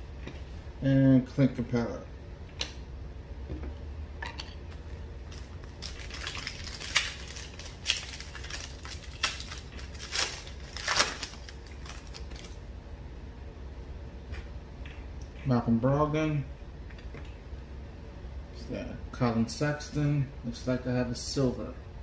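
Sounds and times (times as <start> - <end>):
foil wrapper crinkling and tearing: 5.3 - 12.6.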